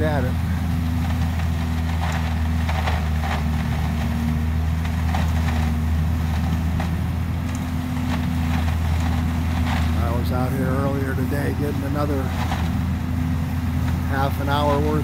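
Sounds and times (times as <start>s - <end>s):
light clatters: 0.0s - 15.0s
vacuum truck droning: 0.0s - 15.0s.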